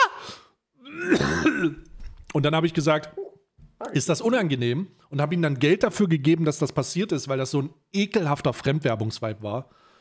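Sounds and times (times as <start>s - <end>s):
man's rough throat-clearing noise: 0.8s - 1.9s.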